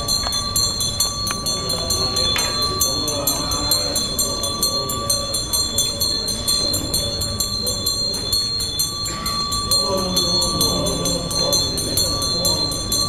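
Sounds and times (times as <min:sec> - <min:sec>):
small metal bells ringing: 0:00.0 - 0:13.0.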